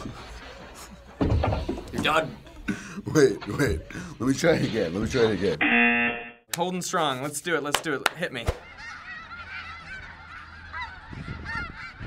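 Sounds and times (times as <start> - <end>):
flock of geese honking: 8.6 - 12.0.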